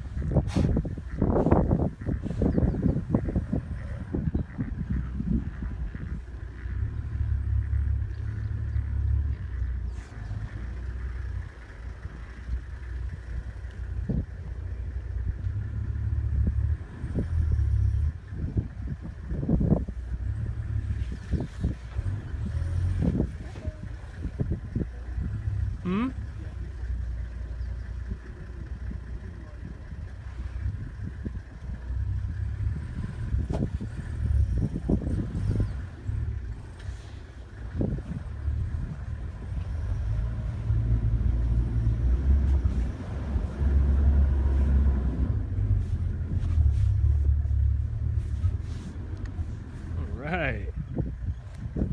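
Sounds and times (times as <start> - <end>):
vehicle rumbling over rough ground: 0.0 - 51.9.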